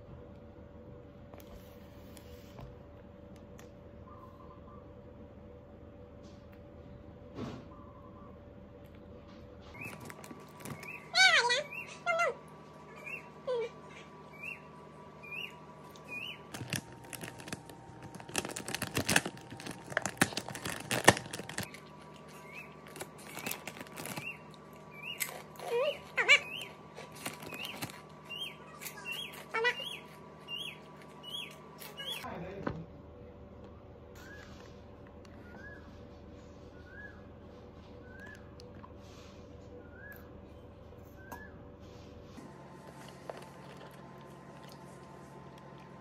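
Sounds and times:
faint steady hum: 0.0 - 46.0
small bird chirping: 9.7 - 12.3, 12.9 - 16.6, 21.6 - 32.3
sharp crackles: 16.4 - 25.7.

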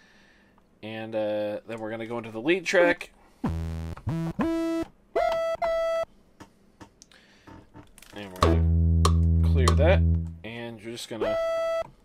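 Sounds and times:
synthesizer buttons clicking: 8.4 - 10.4.

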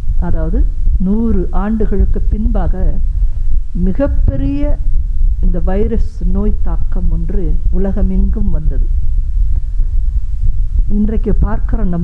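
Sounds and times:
uneven throbbing low hum: 0.0 - 12.0.

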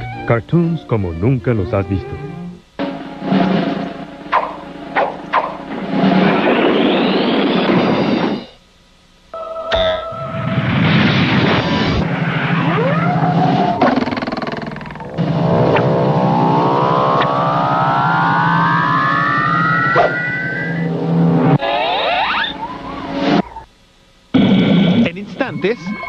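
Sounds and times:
long rising whine: 2.3 - 8.6, 9.3 - 23.7
rising sweeps: 3.0 - 8.5, 14.9 - 23.7
cartoon crash: 3.3 - 8.5, 9.7 - 20.9, 21.6 - 23.6.

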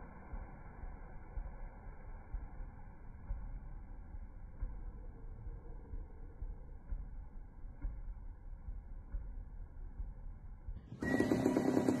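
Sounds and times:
low muffled rumble: 0.0 - 12.0.

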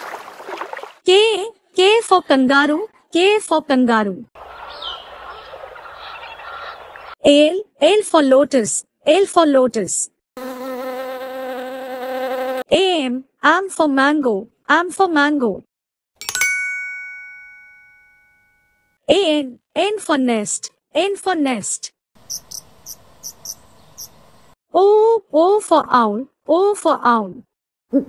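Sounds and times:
bell-like chime ringing: 16.2 - 19.0.

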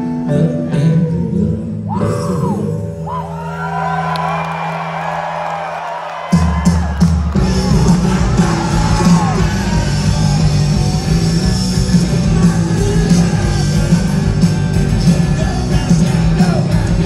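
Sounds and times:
audience whooping and yelling: 1.9 - 14.5
live rock band playing: 6.3 - 17.0.

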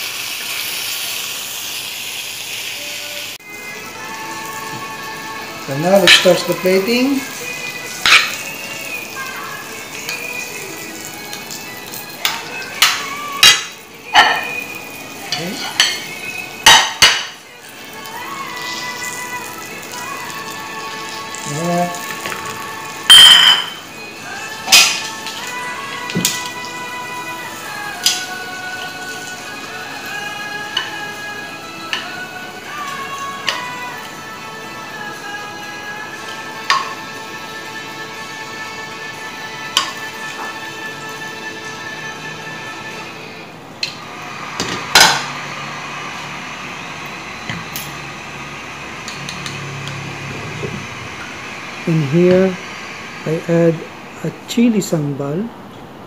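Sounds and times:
background music with held notes: 2.8 - 52.6
metal utensils clinking on pan: 8.0 - 8.5, 12.2 - 14.6, 15.2 - 17.4, 23.1 - 23.8.

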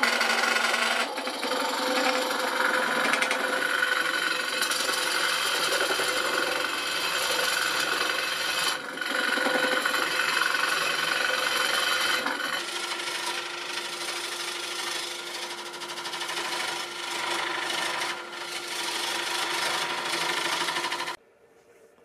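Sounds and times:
wood lathe cutting rasping hiss: 0.0 - 21.2.

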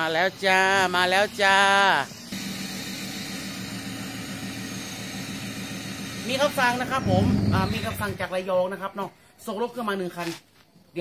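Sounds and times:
truck engine idling: 2.2 - 8.4.

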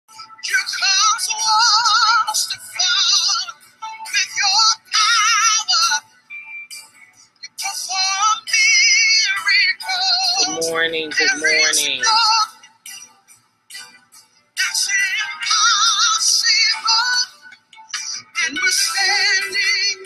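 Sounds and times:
high voice singing with vibrato: 7.6 - 12.5, 18.2 - 20.0.

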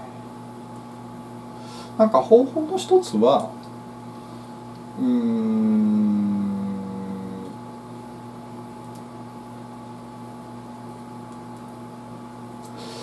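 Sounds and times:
low hum of room equipment: 0.0 - 13.0
man humming in hesitation: 5.0 - 7.6.

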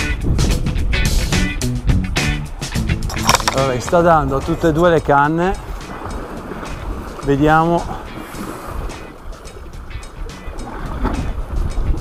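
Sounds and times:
wind on microphone: 0.0 - 2.1, 7.8 - 12.0
background music: 0.0 - 12.0
sea washing on rocks: 3.1 - 12.0.

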